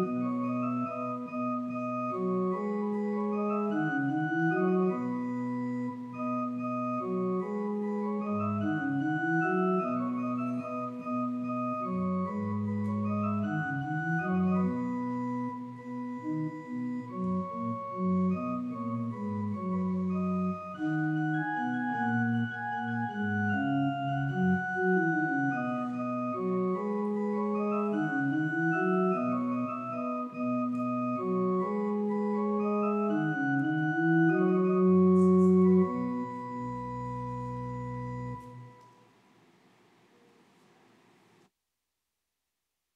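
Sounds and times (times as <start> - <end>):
church organ playing: 0.0 - 39.1.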